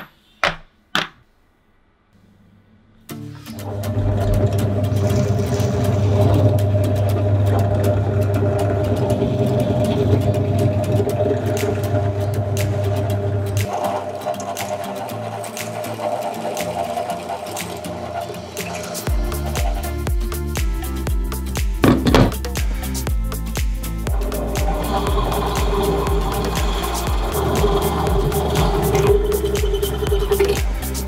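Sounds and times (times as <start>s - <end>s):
music playing: 3.1s - 31.0s.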